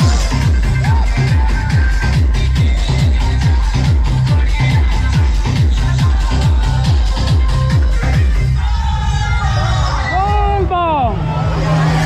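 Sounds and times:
dj music with heavy bass: 0:00.0 - 0:12.0.

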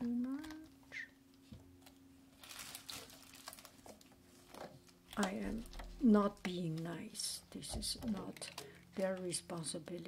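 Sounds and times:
faint steady hum: 0:00.0 - 0:10.0
crinkly rustle: 0:02.3 - 0:10.0.

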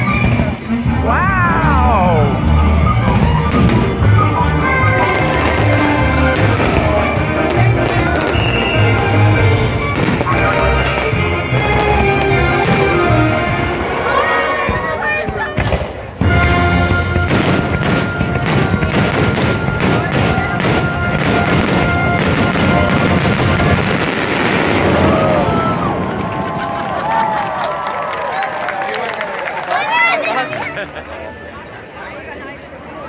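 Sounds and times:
loud show music: 0:00.0 - 0:15.0, 0:16.2 - 0:25.0
fireworks bursting: 0:04.9 - 0:13.0, 0:16.9 - 0:26.7
crowd cheering and whooping: 0:24.6 - 0:31.9.

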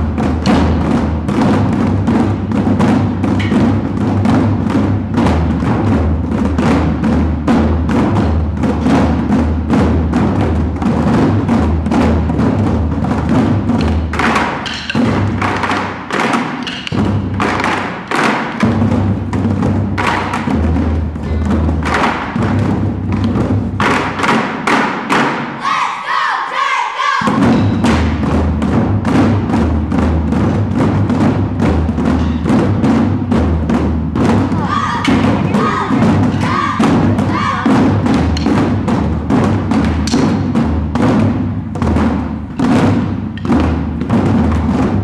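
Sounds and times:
taiko drums: 0:00.0 - 0:26.0, 0:27.2 - 0:45.0
short high shouts: 0:34.6 - 0:37.7.

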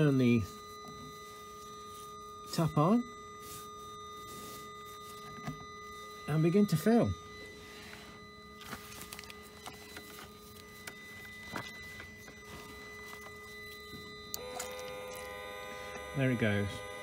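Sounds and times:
electric pump humming: 0:00.0 - 0:17.0.

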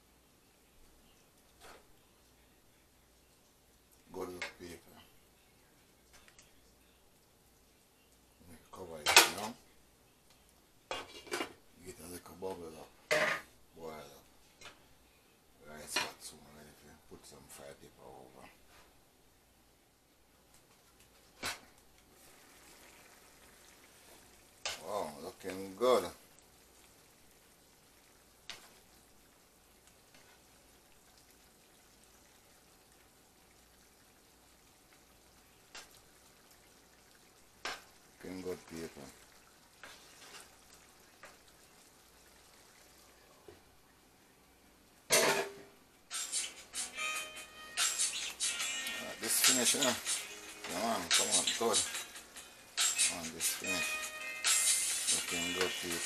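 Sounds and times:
food simmering in skillet: 0:18.6 - 0:56.0
wooden spatula stirring: 0:29.7 - 0:31.4, 0:37.3 - 0:41.9
spatula scraping in frying pan: 0:39.8 - 0:41.4, 0:46.1 - 0:53.6.

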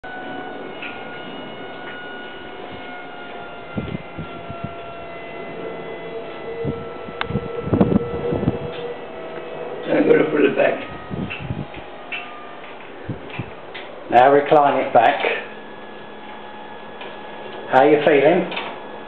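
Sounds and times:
armchair motor whining: 0:00.0 - 0:19.0.

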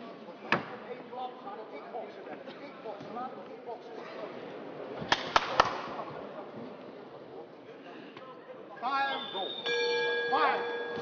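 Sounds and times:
arena crowd murmur: 0:00.0 - 0:10.8.

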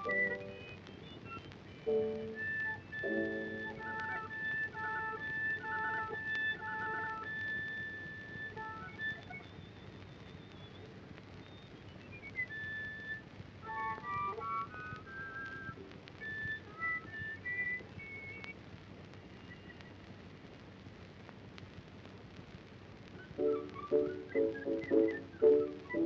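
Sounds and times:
music with low notes: 0:00.0 - 0:09.6, 0:13.3 - 0:17.2, 0:23.3 - 0:26.0
whistled melody: 0:00.0 - 0:10.8, 0:11.4 - 0:18.5, 0:23.2 - 0:26.0.

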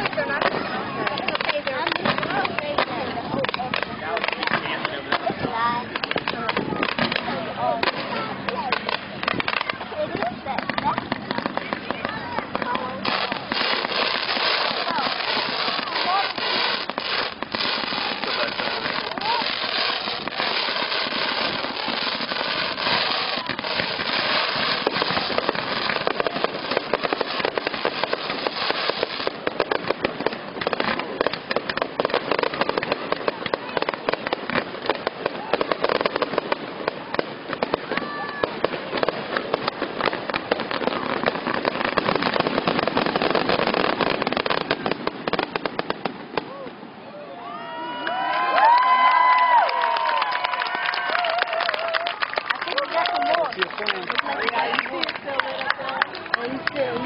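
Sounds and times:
fireworks crackling and banging: 0:00.0 - 0:57.0.

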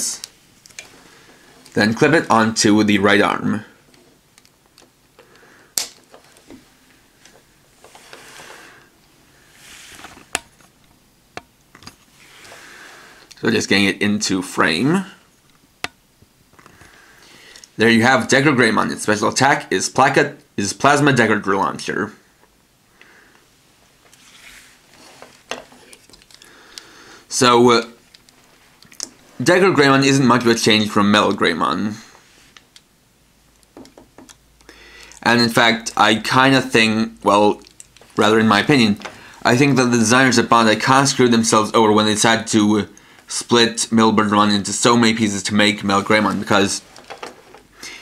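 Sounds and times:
plastic parts clicking together: 0:04.4 - 0:06.5, 0:25.5 - 0:26.9
hands rustling on plastic: 0:46.1 - 0:48.0.

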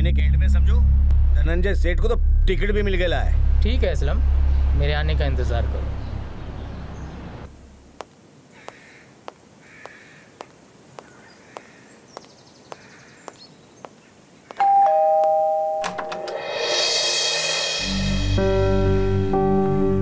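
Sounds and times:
low rumble: 0:00.0 - 0:07.9
two-tone electronic doorbell: 0:14.6 - 0:16.5.

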